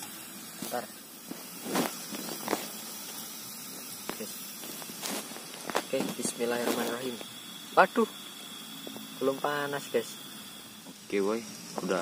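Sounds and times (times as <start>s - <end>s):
camp stove burner hissing: 0.0s - 12.0s.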